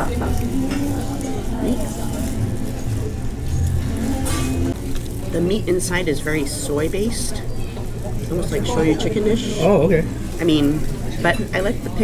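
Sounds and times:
faint diners chatter: 0.0 - 12.0.

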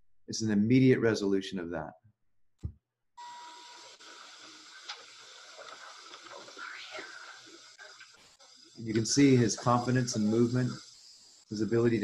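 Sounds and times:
recorded room noise hiss: 3.2 - 12.0.

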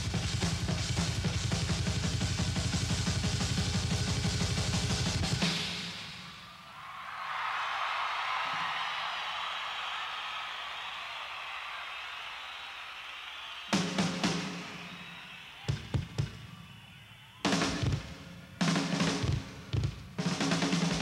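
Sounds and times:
audience cheering and applauding: 6.0 - 17.8
drum kit solo: 13.7 - 14.9, 17.4 - 21.0.

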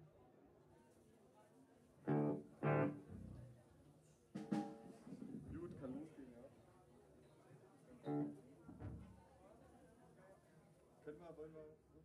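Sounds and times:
band playing short loud notes: 2.1 - 3.4.

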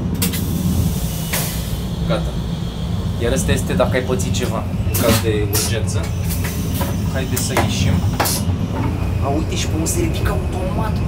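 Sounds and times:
train rumbling in motion: 0.0 - 11.0
brief hiss: 0.2 - 1.9.

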